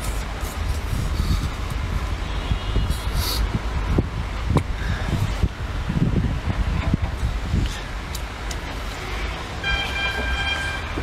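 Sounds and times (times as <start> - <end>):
wind on microphone: 0.0 - 9.7
horn sounding: 9.6 - 11.0.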